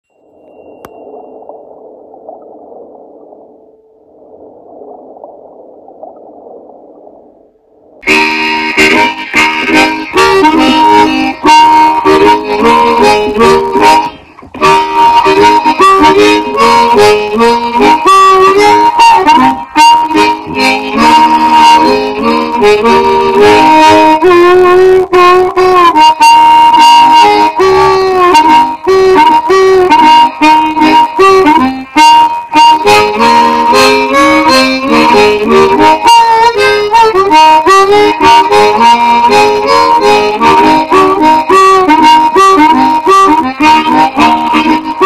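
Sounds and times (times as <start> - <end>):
soft hissing noise: 0.1 - 8.0
blues harmonica: 8.0 - 45.0.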